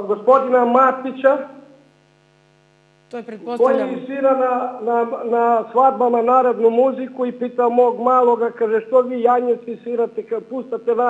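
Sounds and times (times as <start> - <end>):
electrical mains hum: 0.0 - 11.0
woman speaking: 3.1 - 4.0.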